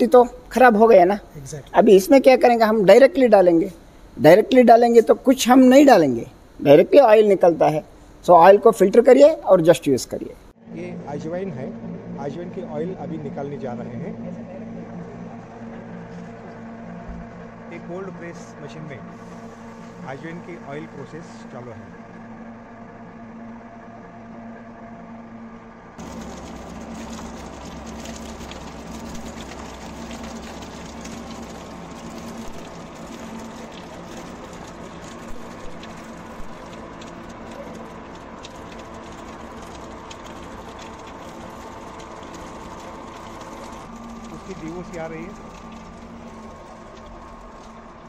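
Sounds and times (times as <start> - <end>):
oil press machine hum: 0.0 - 48.0.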